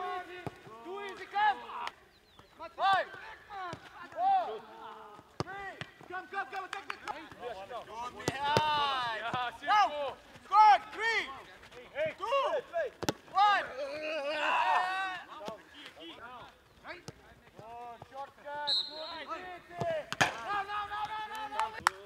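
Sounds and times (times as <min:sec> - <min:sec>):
players shouting: 0:00.0 - 0:22.0
football being kicked: 0:08.1 - 0:09.6, 0:12.9 - 0:13.4, 0:19.7 - 0:20.5.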